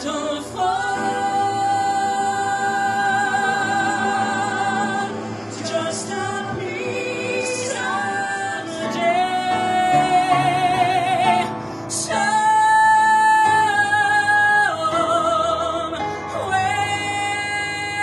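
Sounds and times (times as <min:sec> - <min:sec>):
man singing show-tune ballad: 0:00.0 - 0:18.0.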